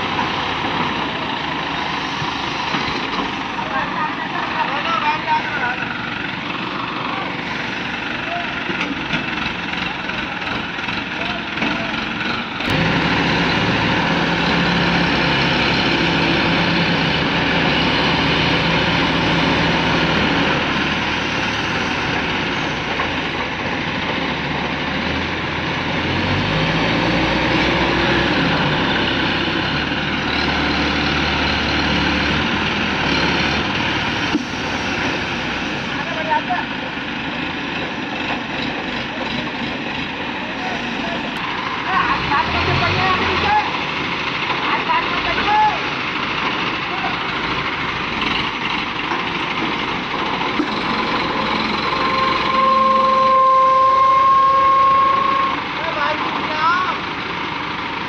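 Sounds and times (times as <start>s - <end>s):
diesel crane engines running: 0.0s - 58.0s.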